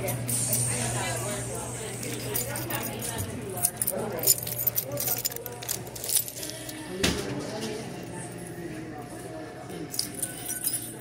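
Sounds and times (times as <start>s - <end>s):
restaurant chatter: 0.0s - 11.0s
metallic jingling and clinking: 2.0s - 6.7s, 9.9s - 11.0s.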